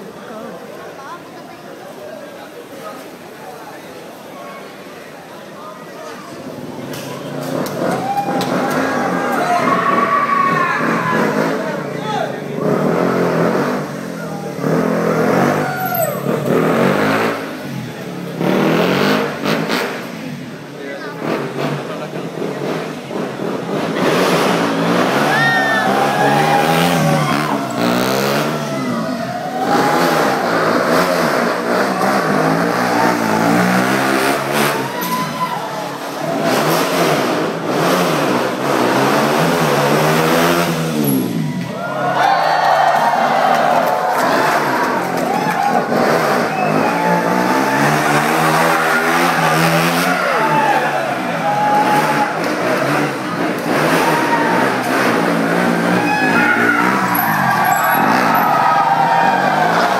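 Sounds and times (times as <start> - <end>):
motorcycle engine revving hard: 8.5 - 35.0, 36.0 - 41.6, 44.2 - 59.9.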